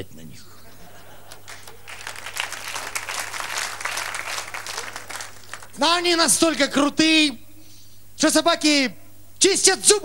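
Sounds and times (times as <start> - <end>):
audience applauding: 1.0 - 6.6.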